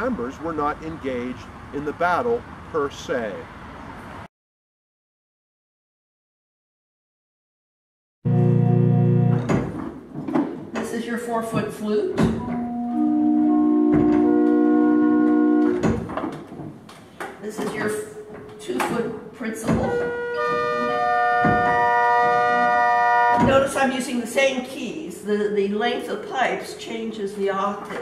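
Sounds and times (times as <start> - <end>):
pipe organ chord: 8.3 - 9.5, 12.5 - 15.8, 19.9 - 23.4
organ stop wooden knock: 13.8 - 16.3, 21.3 - 23.6.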